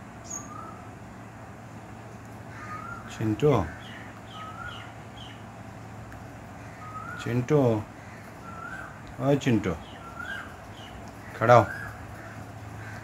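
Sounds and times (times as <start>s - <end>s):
low background hum: 0.0s - 13.0s
faint bird chirps: 0.2s - 1.0s, 2.1s - 5.6s, 6.5s - 13.0s.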